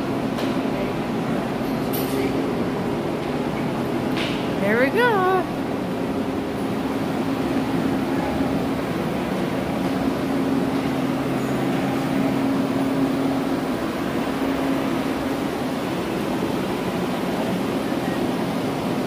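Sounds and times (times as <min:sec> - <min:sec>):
ventilation machinery hum: 0:00.0 - 0:19.0.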